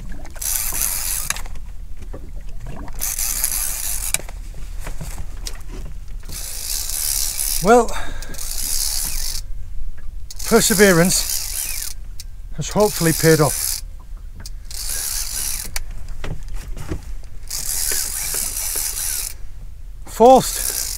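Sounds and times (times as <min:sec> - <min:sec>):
fishing reel ratcheting: 0:00.3 - 0:01.6, 0:03.0 - 0:04.3, 0:06.2 - 0:09.5, 0:10.3 - 0:15.9, 0:17.4 - 0:19.4, 0:20.4 - 0:20.9.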